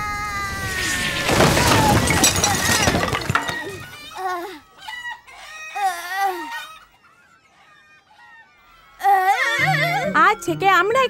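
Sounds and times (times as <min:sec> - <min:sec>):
cartoon crash smash and clatter: 0:00.6 - 0:04.0.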